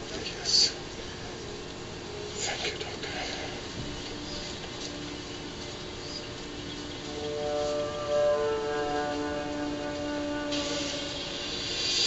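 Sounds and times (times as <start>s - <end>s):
steady hiss: 0.0s - 12.0s
held musical tones: 1.2s - 12.0s.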